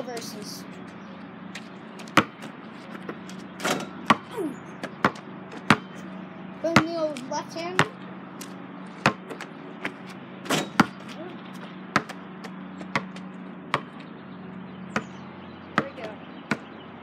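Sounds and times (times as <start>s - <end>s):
basketball bouncing on pavement: 0.0s - 14.2s, 14.8s - 17.0s.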